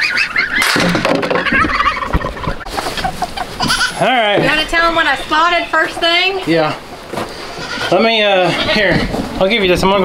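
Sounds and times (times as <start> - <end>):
young geese peeping: 0.0 - 9.2.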